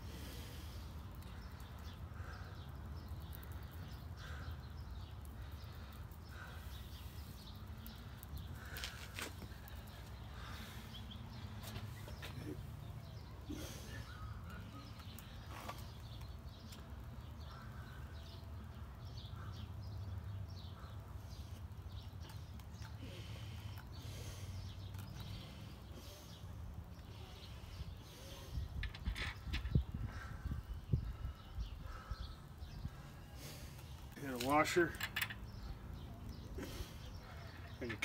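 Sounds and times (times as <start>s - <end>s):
birds calling: 0.0s - 38.0s.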